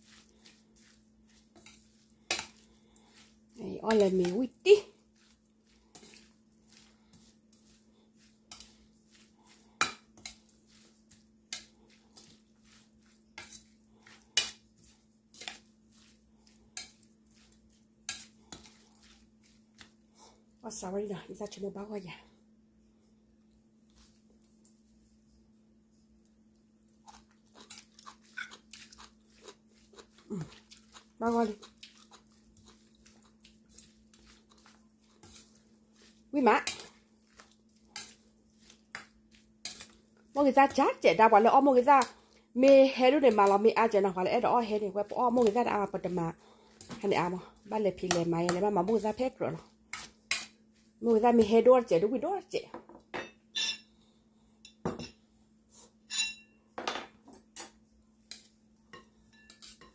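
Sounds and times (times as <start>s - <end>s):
spoon tossing salad in metal bowl: 0.0s - 21.6s, 27.0s - 52.0s, 57.4s - 59.9s
metal spoon clinking on bowl: 53.2s - 53.9s, 56.1s - 56.6s, 58.9s - 59.9s.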